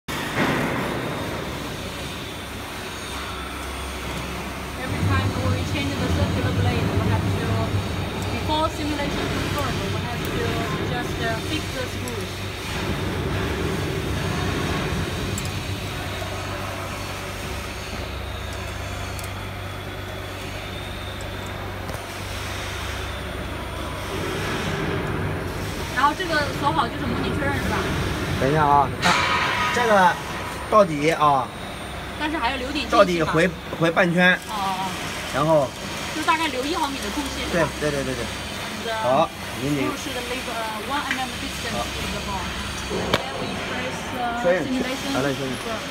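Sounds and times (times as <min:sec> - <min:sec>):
low machine hum: 0:00.1 - 0:45.9
voices talking in background: 0:25.3 - 0:45.9.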